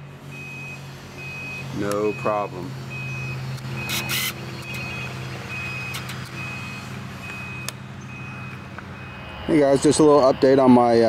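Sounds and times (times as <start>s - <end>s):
reversing alarm beeping: 0.3s - 11.0s.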